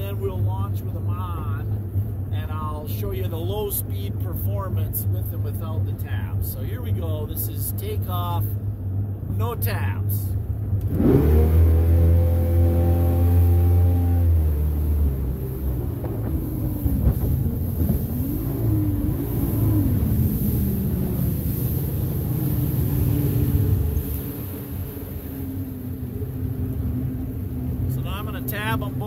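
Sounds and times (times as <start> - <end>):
boat engine accelerating: 0.0 - 29.0.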